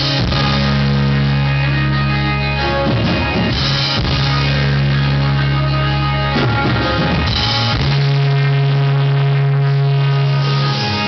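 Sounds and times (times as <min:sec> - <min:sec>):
rock band sustained chord: 0:00.0 - 0:11.0.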